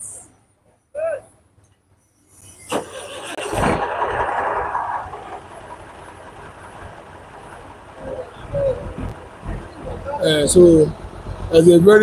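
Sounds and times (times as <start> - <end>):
traffic hum: 0.0 - 12.0
vehicle passing close by: 3.0 - 6.6.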